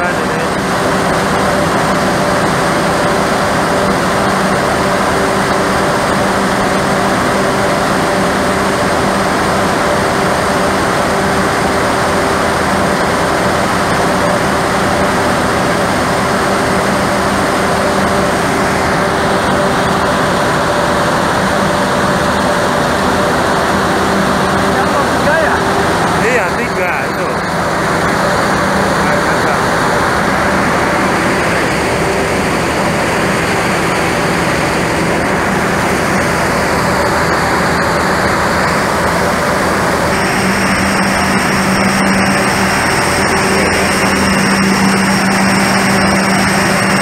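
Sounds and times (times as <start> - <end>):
diesel generators droning: 0.0 - 47.0.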